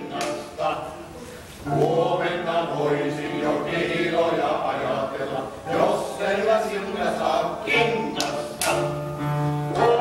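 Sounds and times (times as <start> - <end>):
men singing unaccompanied: 1.7 - 9.0, 9.7 - 10.0.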